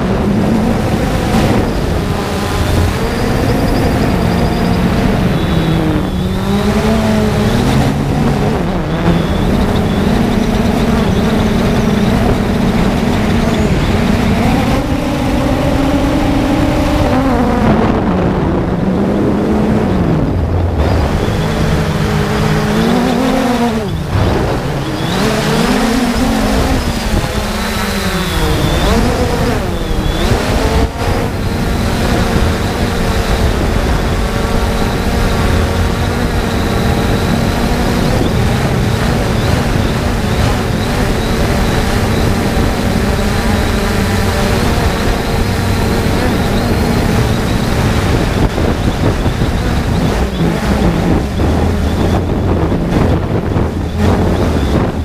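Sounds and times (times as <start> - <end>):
drone propellers whining: 0.0 - 55.0.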